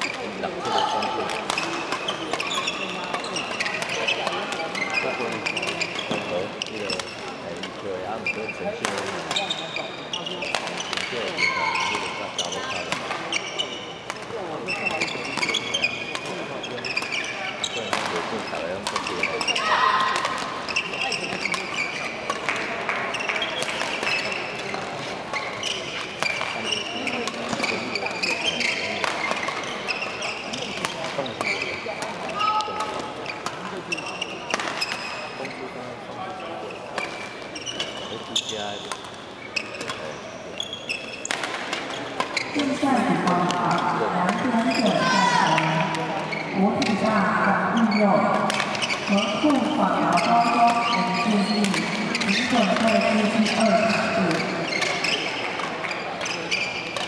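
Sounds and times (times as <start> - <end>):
shoes squeaking on court floor: 0.0 - 57.0
voices in a hall: 0.0 - 57.0
racket striking shuttlecock: 34.5 - 35.0, 41.2 - 42.7, 48.4 - 51.0, 51.6 - 52.9.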